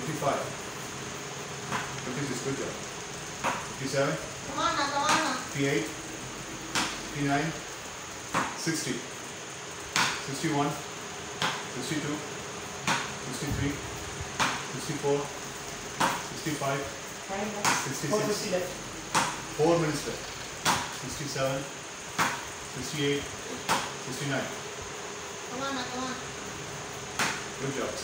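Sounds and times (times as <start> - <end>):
cricket bat striking ball: 12.8 - 13.1, 27.2 - 27.5.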